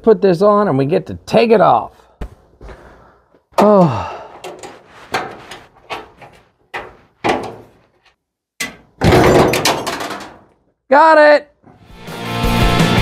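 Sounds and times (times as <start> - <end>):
metallic knocks and clunks: 4.3 - 10.6
rattling metal clatter: 4.4 - 7.8, 8.6 - 10.6.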